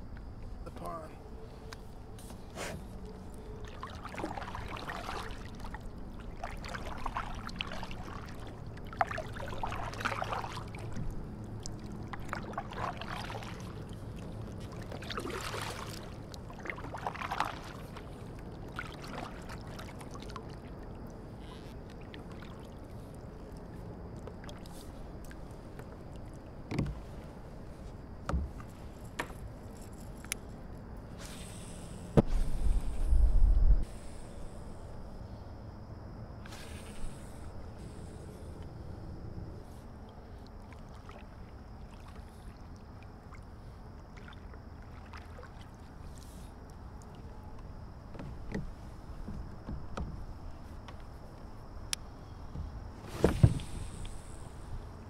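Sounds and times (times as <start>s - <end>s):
paddle strokes splashing water: 2.2s - 29.4s, 39.6s - 51.8s, 52.4s - 54.7s
low rumble of handling: 20.3s - 35.6s
paddle knocking plastic hull: 48.1s - 51.1s, 52.5s - 53.8s.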